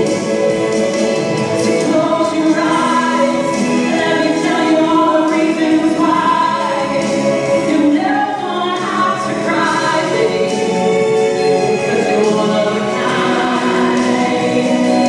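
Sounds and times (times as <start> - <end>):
musical accompaniment: 0.0 - 15.0
woman singing into a microphone: 1.6 - 15.0.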